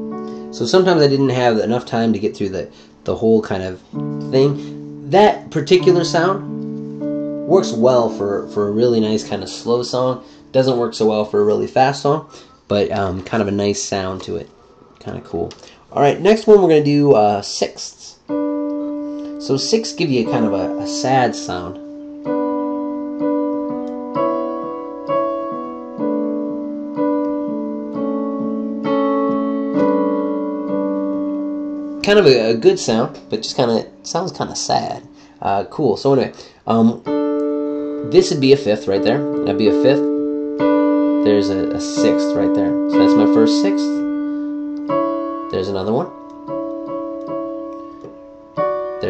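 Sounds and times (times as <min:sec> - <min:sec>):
piano chords on digital keyboard: 0:00.0 - 0:49.0.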